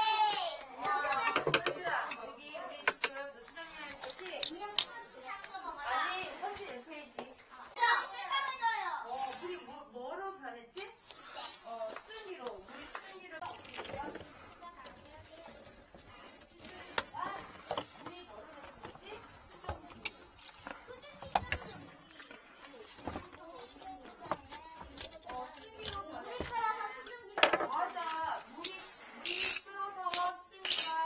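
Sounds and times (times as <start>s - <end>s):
faint voices talking: 0.0s - 31.0s
plastic pipes clicking and knocking: 0.3s - 3.3s, 11.9s - 31.0s.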